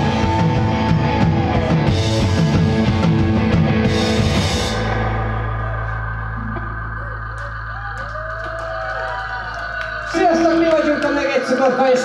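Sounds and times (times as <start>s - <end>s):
sustained electric guitar tones: 3.2s - 8.0s
hand claps: 7.3s - 11.5s.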